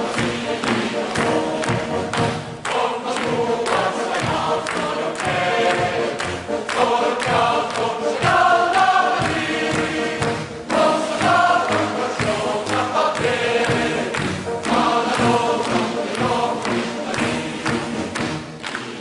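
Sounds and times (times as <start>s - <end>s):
male choir singing: 0.0s - 18.1s
band accompaniment: 0.0s - 19.0s.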